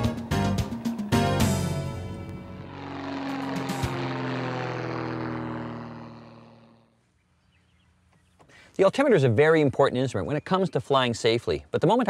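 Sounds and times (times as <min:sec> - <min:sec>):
propeller airplane engine drone: 0:00.0 - 0:08.5.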